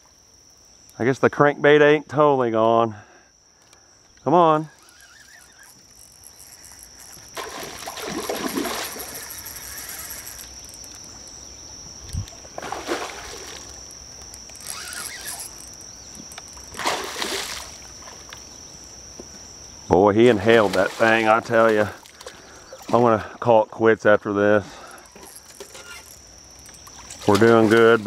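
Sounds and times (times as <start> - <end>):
high cricket trill: 0.0 - 28.0
fish splashing and thrashing in water: 4.9 - 11.3, 12.2 - 18.4, 20.3 - 23.1.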